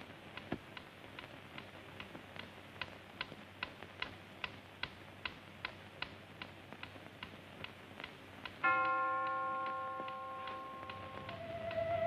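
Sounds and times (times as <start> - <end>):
clock ticking: 0.2 - 11.8
clock chime: 8.6 - 11.6
eerie wavering musical tone: 8.9 - 12.0.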